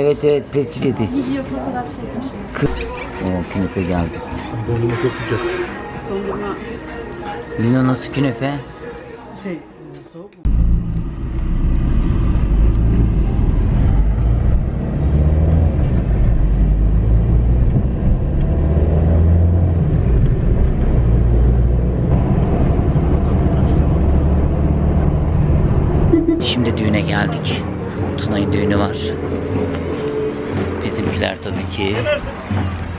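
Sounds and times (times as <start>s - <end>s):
car engine and road noise: 10.5s - 32.9s.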